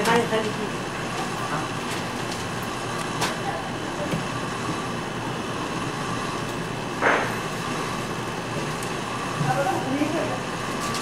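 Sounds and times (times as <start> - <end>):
shop room noise: 0.0 - 11.0.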